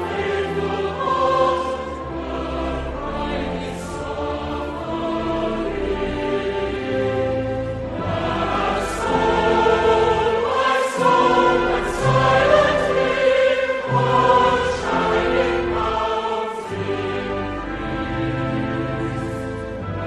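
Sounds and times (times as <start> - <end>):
choir singing with instruments: 0.0 - 20.0.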